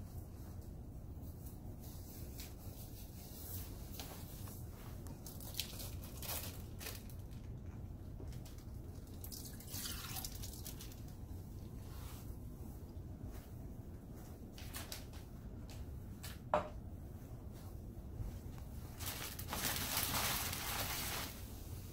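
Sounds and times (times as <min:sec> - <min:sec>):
steady low hum: 0:00.0 - 0:21.9
plastic bag rustling: 0:01.8 - 0:12.5, 0:18.2 - 0:21.6.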